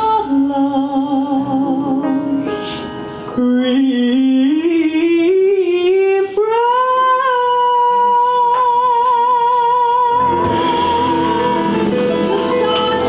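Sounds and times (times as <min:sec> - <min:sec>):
piano: 0:00.0 - 0:13.0
woman singing jazz: 0:00.0 - 0:13.0
cymbals: 0:10.2 - 0:13.0.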